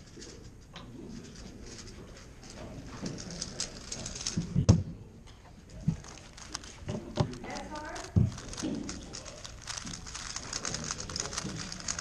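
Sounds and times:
puzzle cube clicking: 0:06.0 - 0:12.0.

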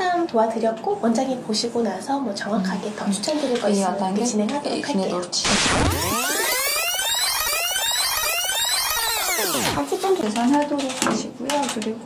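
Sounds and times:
high-pitched fast-forward warble: 0:05.4 - 0:09.8.

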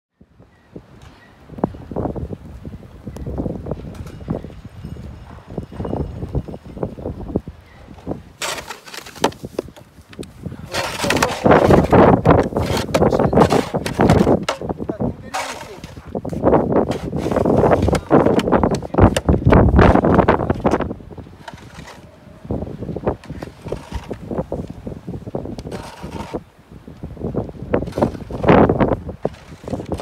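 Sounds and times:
snow shovels scraping wet snow: 0:08.4 - 0:09.8, 0:10.5 - 0:19.2, 0:21.4 - 0:22.1, 0:23.1 - 0:24.6, 0:25.6 - 0:26.5, 0:27.8 - 0:30.0.

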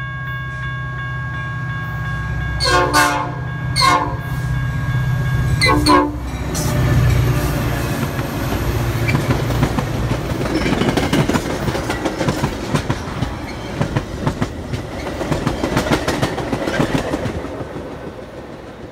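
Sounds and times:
locomotive engine drone: 0:00.0 - 0:10.6
train wheels clattering: 0:06.4 - 0:18.9.

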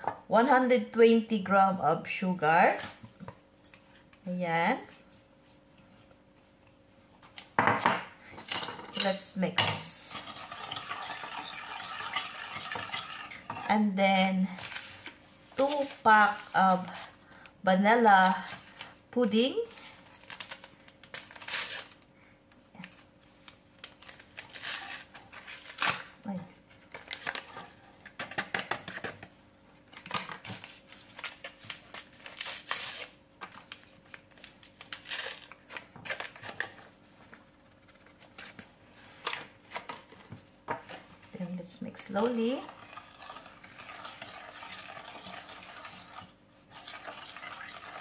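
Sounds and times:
powder packets crinkling: 0:30.0 - 0:36.8.

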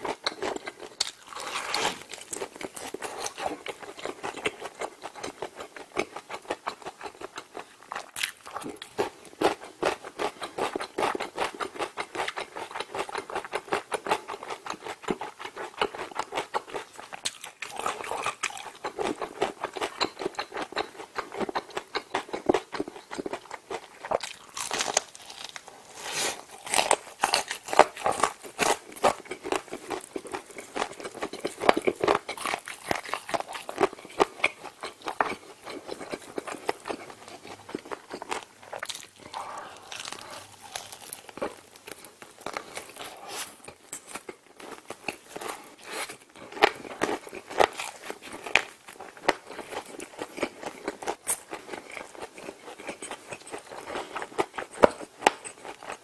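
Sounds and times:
chewing and crunching food: 0:00.0 - 0:56.0.

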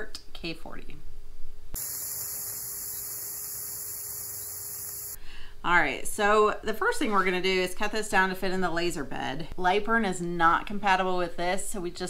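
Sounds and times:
electrical hiss: 0:01.8 - 0:05.2.

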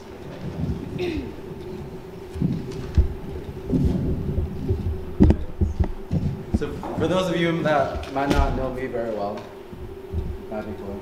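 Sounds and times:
low hum: 0:00.0 - 0:11.0
microphone handling thumps and knocks: 0:00.4 - 0:07.3, 0:08.0 - 0:08.8, 0:09.7 - 0:10.7.

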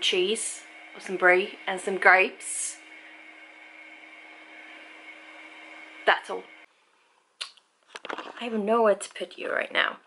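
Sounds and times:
low even hum: 0:00.0 - 0:07.1.

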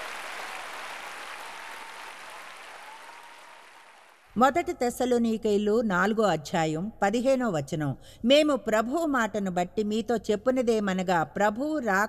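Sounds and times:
large audience applauding: 0:00.0 - 0:04.4.

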